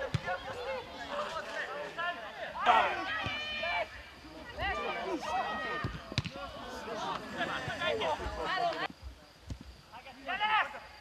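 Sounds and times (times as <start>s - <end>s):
players shouting: 0.0s - 8.9s
ball being kicked: 5.8s - 6.4s.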